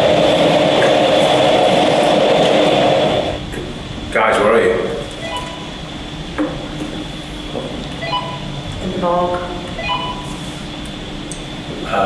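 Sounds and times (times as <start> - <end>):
electrical hum: 0.0 - 12.0
thin high whine: 0.0 - 12.0.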